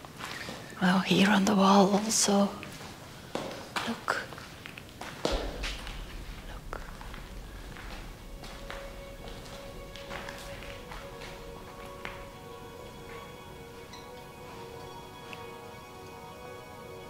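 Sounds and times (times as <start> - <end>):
soft background music: 0.0 - 17.0
footsteps on cave floor: 2.0 - 14.6
low hum: 4.9 - 17.0.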